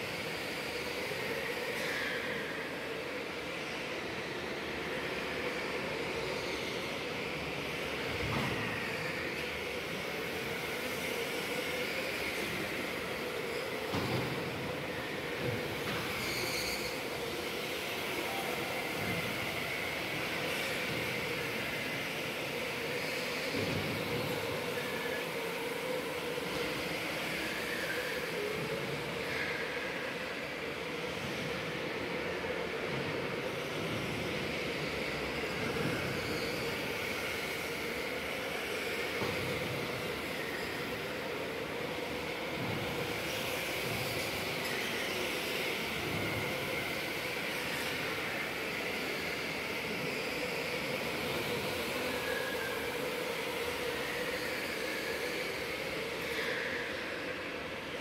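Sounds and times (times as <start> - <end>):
electric go-kart motors whining: 0.0 - 58.0.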